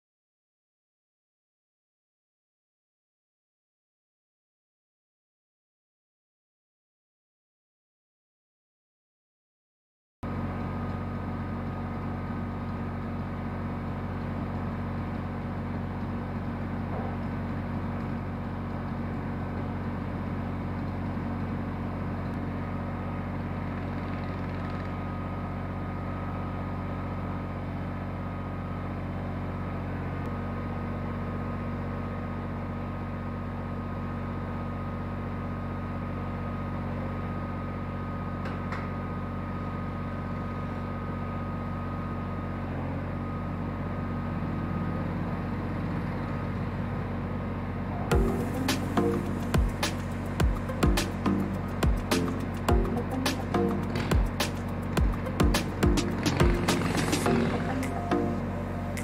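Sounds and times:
tractor diesel engine idling: 10.3s - 38.4s, 39.0s - 59.0s.

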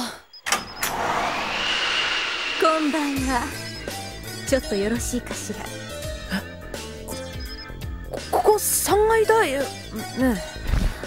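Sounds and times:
rushing whoosh: 0.6s - 5.5s.

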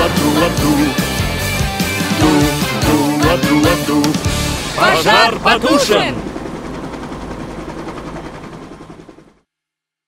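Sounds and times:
cartoon helicopter rotor chopping: 2.1s - 9.4s.

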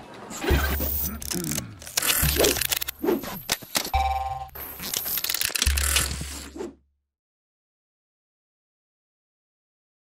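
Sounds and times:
rapid mechanical clicking: 1.1s - 3.9s, 4.8s - 6.4s.

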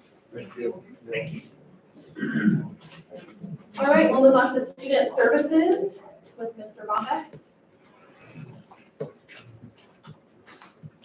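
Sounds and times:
soft footsteps: 8.2s - 11.0s.

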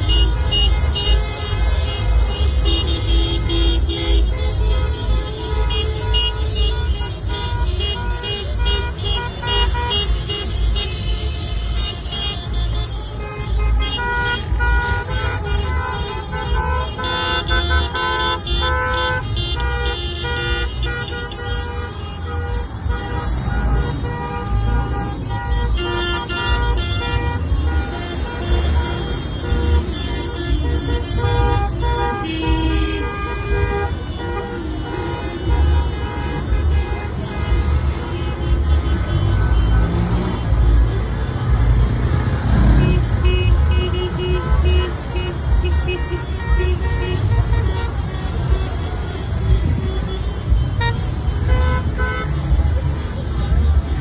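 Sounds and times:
car horns tooting: 0.0s - 54.0s
low rumble of slow cars: 0.0s - 54.0s.

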